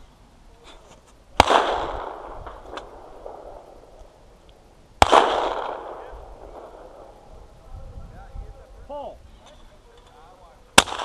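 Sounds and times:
shotgun shot: 1.4s - 3.6s, 5.0s - 7.1s, 10.8s - 11.0s.

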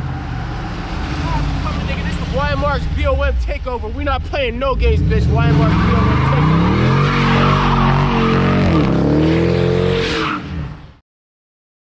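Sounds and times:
car engine revving: 0.0s - 11.0s.

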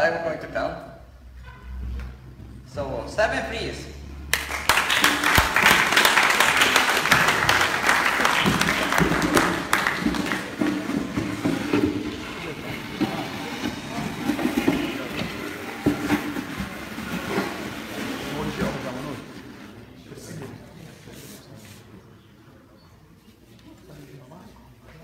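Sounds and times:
audience clapping: 4.3s - 13.6s
murmur of people talking: 5.3s - 25.0s.

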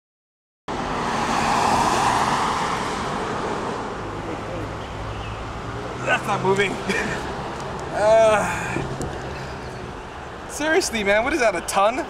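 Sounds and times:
car passing: 0.7s - 12.0s
outdoor traffic noise: 0.7s - 12.0s.

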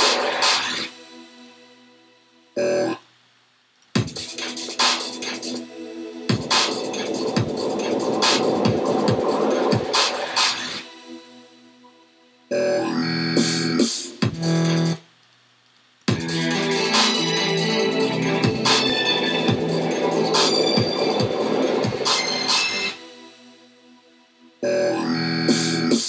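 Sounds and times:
dubstep music with synths and drums: 0.0s - 1.1s, 4.0s - 11.0s, 12.6s - 15.0s, 16.1s - 23.1s, 24.7s - 26.0s.

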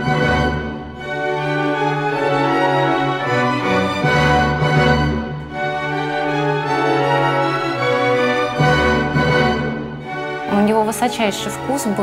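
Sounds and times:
orchestral string music: 0.0s - 12.0s.

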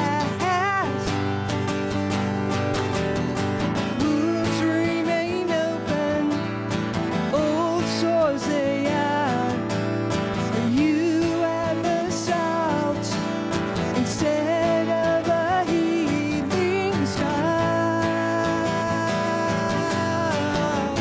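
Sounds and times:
woman singing: 0.0s - 1.4s, 3.8s - 21.0s
acoustic guitar strumming: 0.0s - 21.0s.

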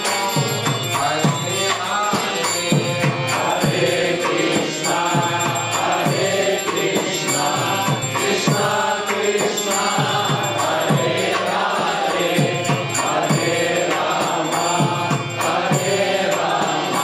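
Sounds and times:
voices chanting together: 0.0s - 17.0s.

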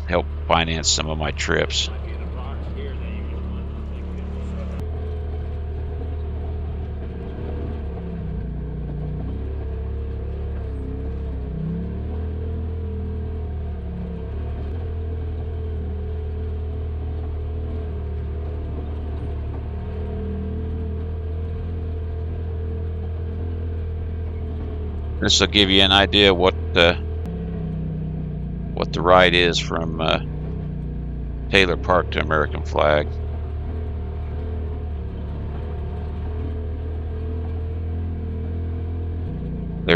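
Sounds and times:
off-road vehicle engine droning: 0.0s - 39.9s.

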